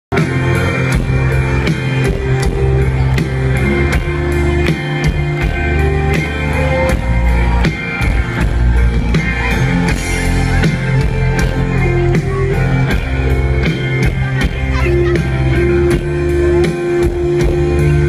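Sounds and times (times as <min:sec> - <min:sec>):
live rock band playing: 0:00.1 - 0:18.0
steady drum beat: 0:00.1 - 0:18.0.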